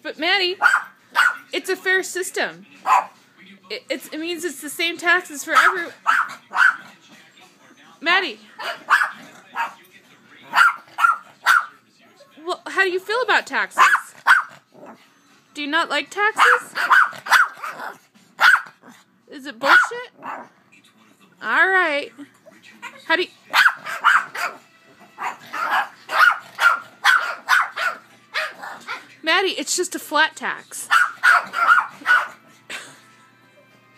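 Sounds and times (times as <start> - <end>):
small dog barking: 0.6 - 1.5, 2.8 - 3.2, 5.6 - 6.9, 8.6 - 9.8, 10.5 - 11.7, 13.8 - 14.6, 16.4 - 18.8, 19.7 - 20.5, 23.5 - 24.6, 25.2 - 29.0, 30.9 - 32.4.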